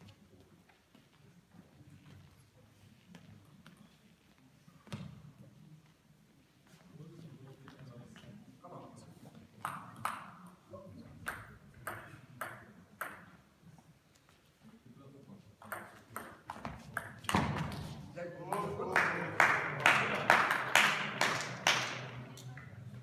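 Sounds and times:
spectators applauding: 18.9 - 22.2.

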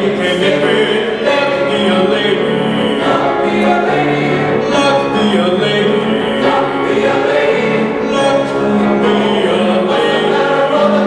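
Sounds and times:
male choir singing chords: 0.0 - 11.0.

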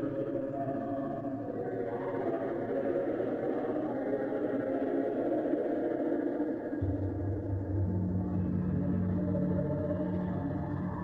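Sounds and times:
ambient drone of held tones: 0.0 - 11.0.

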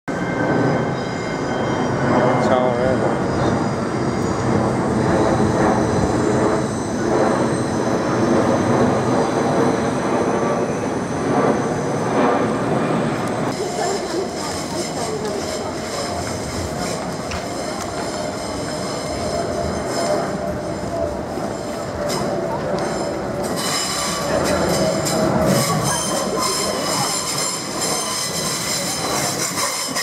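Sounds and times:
jet airliner passing overhead: 0.1 - 30.0.

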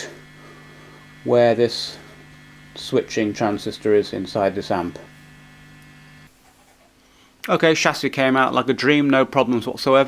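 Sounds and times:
guitar amplifier mains hum: 0.0 - 6.4.

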